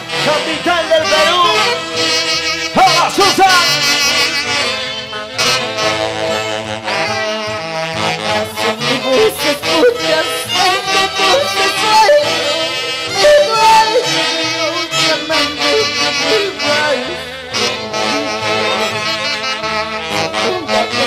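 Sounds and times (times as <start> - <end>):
live band with saxophones and brass: 0.0 - 21.0
woman singing: 8.6 - 17.3, 20.2 - 21.0.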